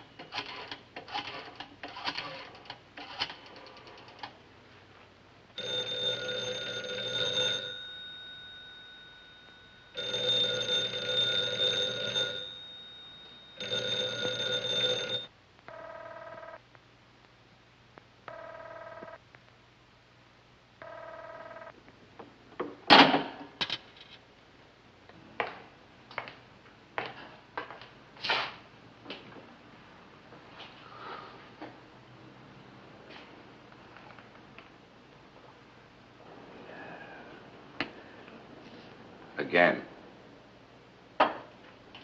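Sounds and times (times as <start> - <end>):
telephone bell ringing: 5.6 - 16.6, 18.3 - 19.2, 20.8 - 21.8.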